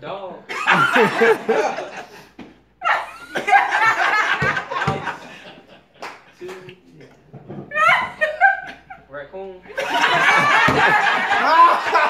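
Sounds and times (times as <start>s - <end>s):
group of people laughing: 0.5s - 6.4s, 7.7s - 9.1s, 9.7s - 12.0s.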